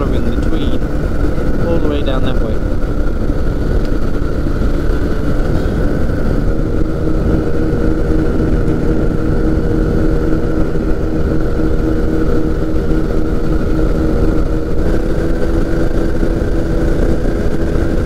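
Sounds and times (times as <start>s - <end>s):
microlight engine droning: 0.0s - 18.0s.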